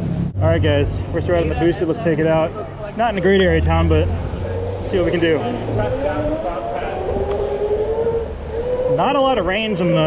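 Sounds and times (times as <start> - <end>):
road and wind rumble: 0.0 - 10.0
electric scooter motor whining: 4.4 - 9.2.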